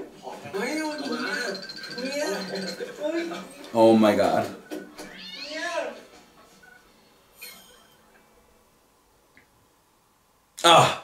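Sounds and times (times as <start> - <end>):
cat meowing: 5.0 - 6.0.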